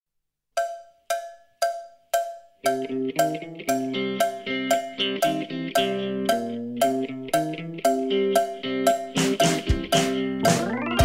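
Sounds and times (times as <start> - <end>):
pitched percussion strikes: 0.6 - 11.0.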